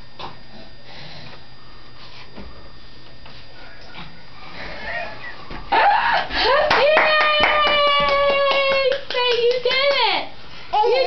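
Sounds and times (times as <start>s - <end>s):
rapid hand claps: 6.5s - 10.2s.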